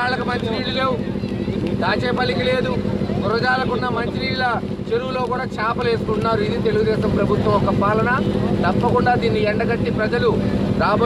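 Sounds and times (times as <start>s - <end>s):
man speaking: 1.6s - 11.0s.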